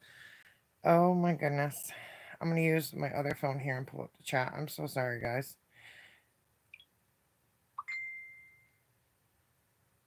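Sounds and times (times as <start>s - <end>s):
smartphone electronic ding: 7.8s - 8.8s.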